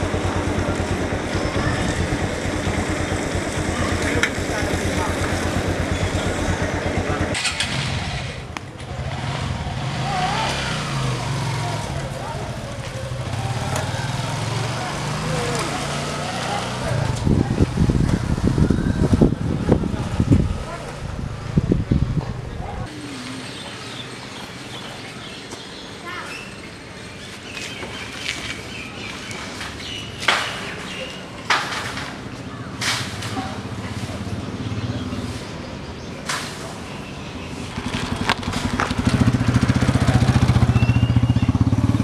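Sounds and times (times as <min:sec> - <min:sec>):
vehicle engine running: 0:00.0 - 0:22.5, 0:37.6 - 0:42.0.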